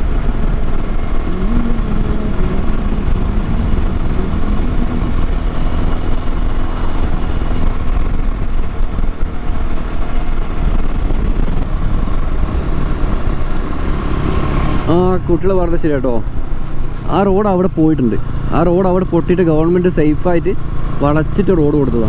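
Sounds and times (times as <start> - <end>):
wind rushing over microphone: 0.0 - 21.0
motorcycle engine cruising: 0.0 - 22.0.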